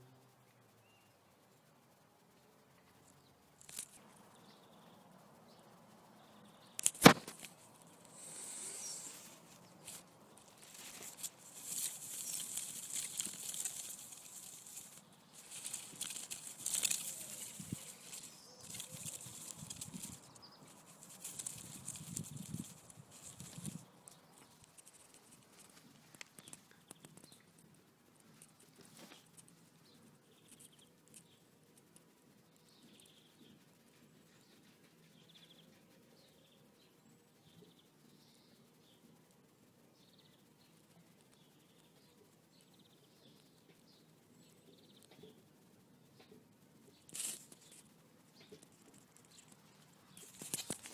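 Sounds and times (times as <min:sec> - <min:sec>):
rustling and brushing: 0:02.8 - 0:04.3, 0:06.7 - 0:35.2, 0:46.2 - 0:50.9
faint ticks: 0:06.7 - 0:36.3
sharp click: 0:06.8 - 0:07.6.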